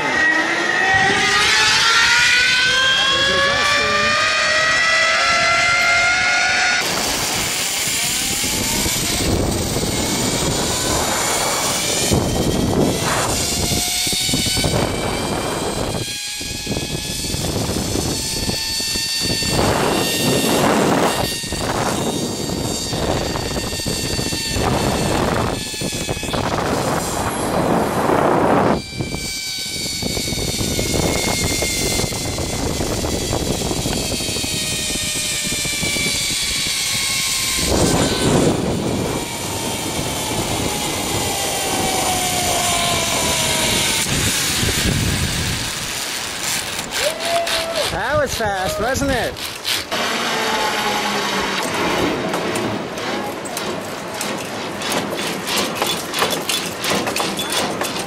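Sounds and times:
wind rushing over microphone: 0:00.0 - 0:50.0
zipline pulleys whining on cable: 0:00.0 - 0:58.0.

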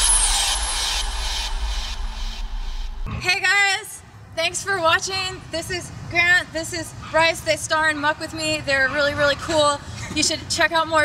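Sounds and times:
hissing shimmering wash: 0:00.0 - 0:03.1
deep rumble: 0:00.0 - 0:03.2.

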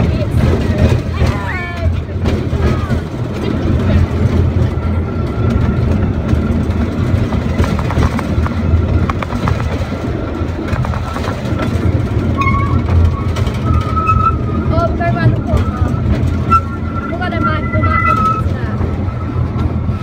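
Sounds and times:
track clicks and clatter: 0:00.0 - 0:20.0
train rumble inside carriage: 0:00.0 - 0:20.0.

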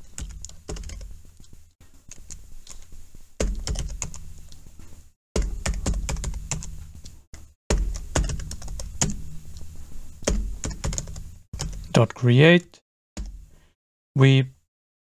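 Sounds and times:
typing on computer keyboard: 0:00.1 - 0:01.1, 0:03.4 - 0:04.2, 0:05.4 - 0:06.8, 0:07.7 - 0:09.2, 0:10.2 - 0:11.9.

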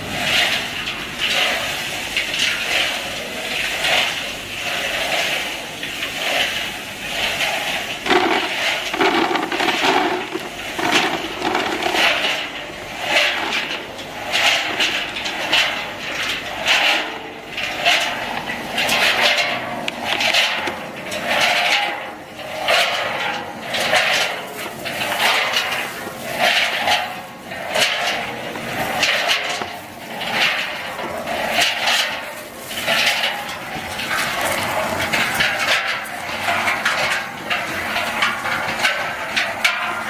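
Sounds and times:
peanuts rattling in rotating drum: 0:07.3 - 0:22.0.

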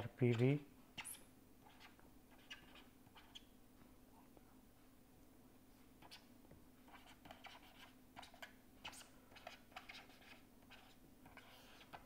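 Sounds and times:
pen scratching on paper: 0:06.9 - 0:12.0.

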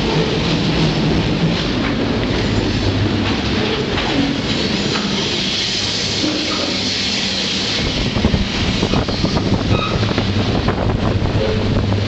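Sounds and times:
train wheels rumbling on rail: 0:00.0 - 0:12.0.

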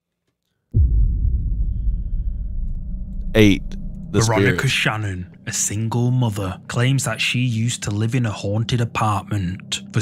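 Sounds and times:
sudden hit: 0:00.8 - 0:05.4
low rumbling drone: 0:00.8 - 0:05.9.

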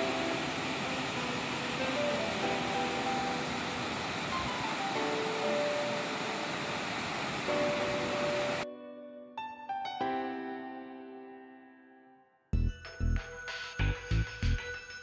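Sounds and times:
piano music: 0:00.0 - 0:06.5, 0:07.4 - 0:14.6
river water rushing over stones: 0:00.0 - 0:08.6.

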